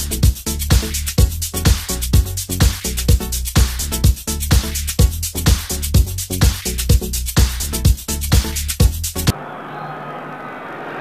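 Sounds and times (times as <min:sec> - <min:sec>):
electronic dance music: 0:00.0 - 0:09.4
football crowd noise: 0:09.3 - 0:11.0.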